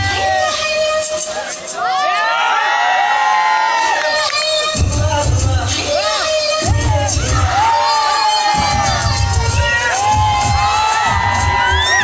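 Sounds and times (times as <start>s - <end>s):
crowd screaming and cheering: 0.0s - 12.0s
dance music with bass beat: 4.2s - 12.0s.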